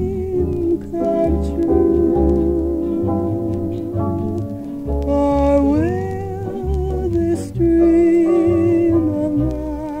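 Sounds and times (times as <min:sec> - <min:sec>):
plucked bass notes: 0:00.0 - 0:10.0
wordless vocal jazz melody: 0:00.0 - 0:10.0.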